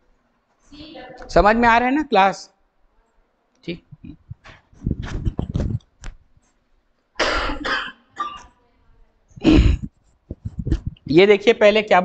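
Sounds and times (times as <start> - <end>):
person coughing: 7.2 - 8.5, 9.4 - 9.9.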